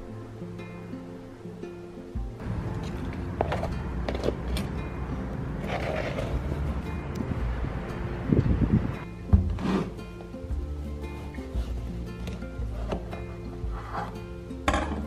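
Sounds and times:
guitar music: 0.0s - 15.0s.

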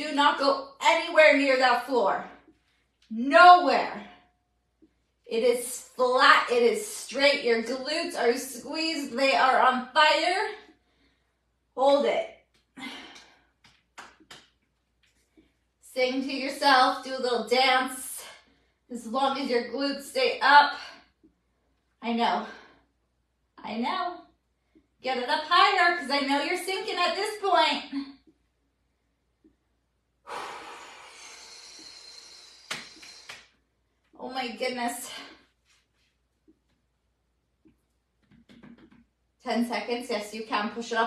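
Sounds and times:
woman exhaling breathily: 30.3s - 33.3s.

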